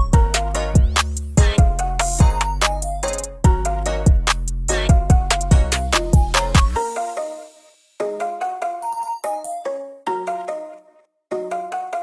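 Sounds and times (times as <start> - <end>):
background music with beat and bass: 0.0 - 9.5
bell-like melody: 1.6 - 10.7.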